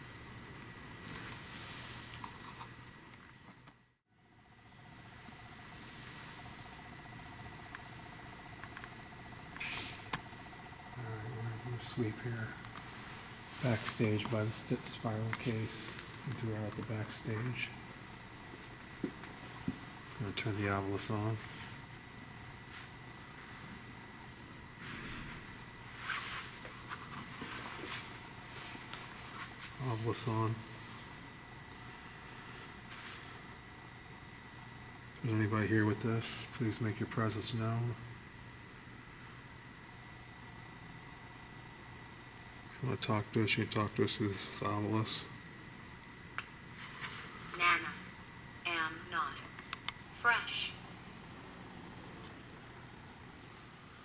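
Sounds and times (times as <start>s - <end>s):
faint electronic whine: 0.0s - 54.0s
recorder hiss: 0.0s - 54.0s
rustling scrape: 25.9s - 29.7s.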